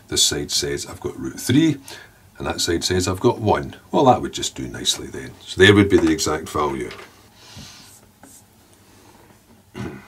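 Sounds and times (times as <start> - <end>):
marker pen on whiteboard: 7.6 - 8.5.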